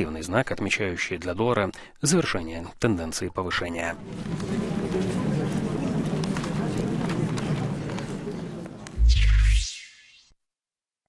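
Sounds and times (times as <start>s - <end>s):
murmur of indistinct voices: 3.7s - 9.0s.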